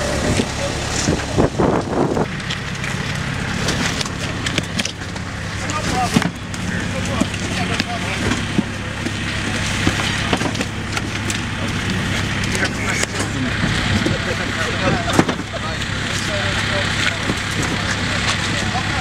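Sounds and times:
indistinct chatter: 0.0 - 19.0
vehicle engine idling: 0.0 - 19.0.

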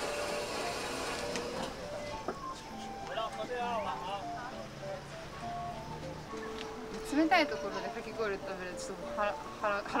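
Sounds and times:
shaved-ice machine running: 0.0 - 1.7.

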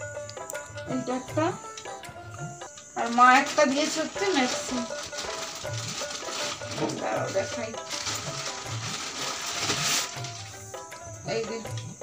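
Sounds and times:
background music with low beat: 0.0 - 12.0.

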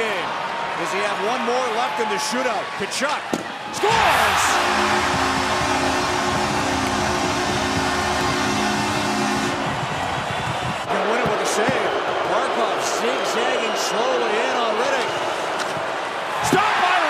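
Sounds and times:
crowd cheering: 0.0 - 17.0
low horn-like chord: 4.5 - 9.8.

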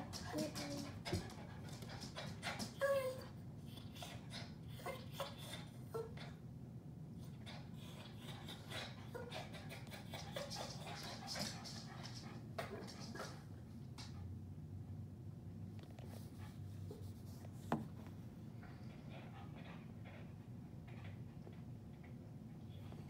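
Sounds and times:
low background hum: 0.0 - 23.0.

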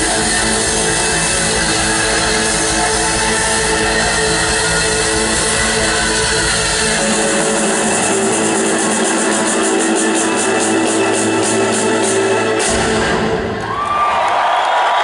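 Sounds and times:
deep bass: 0.0 - 7.0
live band music: 0.0 - 13.6.

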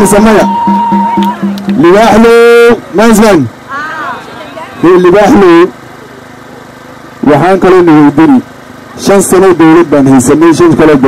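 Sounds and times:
man shouting through loudspeaker: 0.0 - 5.7.

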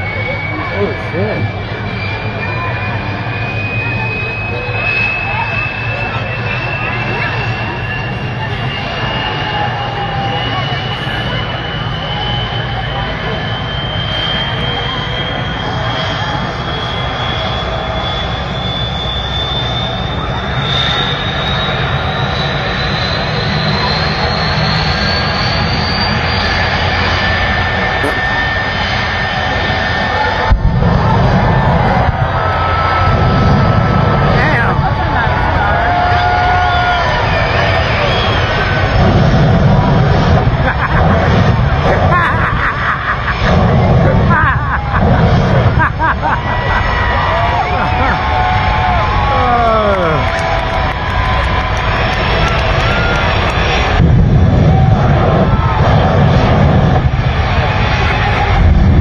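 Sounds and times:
jet blast surges: 0.0 - 59.0
jet engine whine: 0.0 - 59.0.

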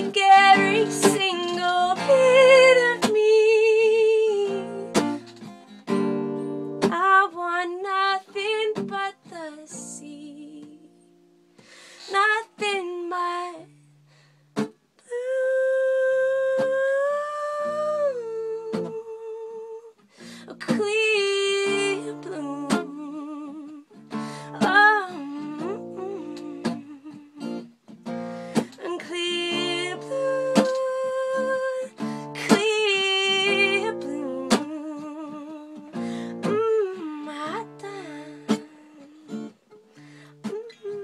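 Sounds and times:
woman singing with vibrato: 0.0 - 5.3, 6.8 - 11.0, 12.0 - 13.8, 15.0 - 27.6, 28.6 - 39.6, 40.3 - 41.0
plucked acoustic guitar: 0.0 - 14.8, 16.3 - 41.0.

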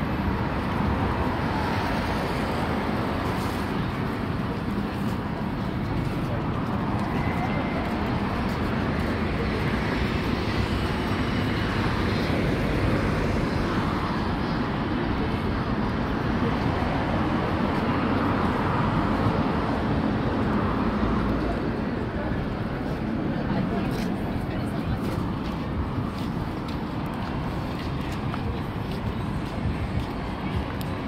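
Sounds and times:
passers-by talking: 0.0 - 31.0
traffic noise: 0.0 - 31.0.

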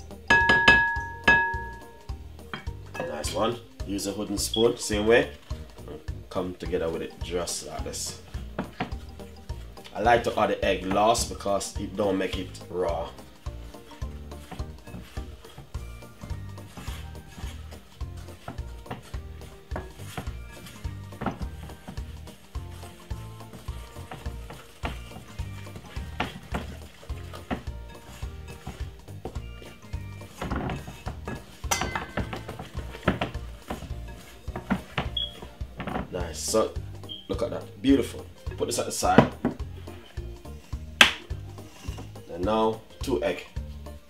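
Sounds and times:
background music with low beat: 0.0 - 44.0
spoon stirring thick batter: 0.0 - 44.0
spoon knocking against glass bowl: 0.3 - 1.8.

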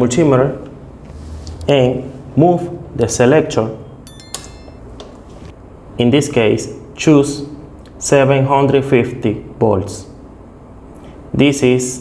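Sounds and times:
short high-pitched ding: 4.0 - 5.0.

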